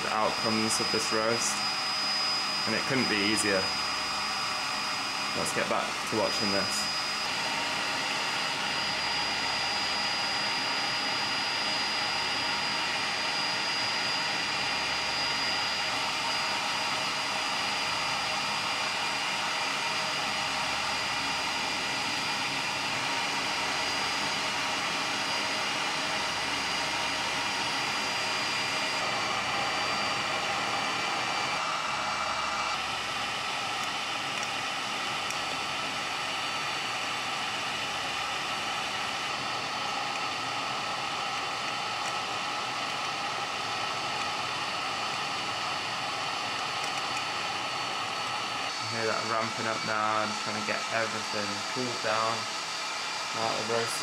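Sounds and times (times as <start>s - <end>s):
coffee roaster fan blowing: 0.0s - 54.0s
high whine: 0.0s - 54.0s.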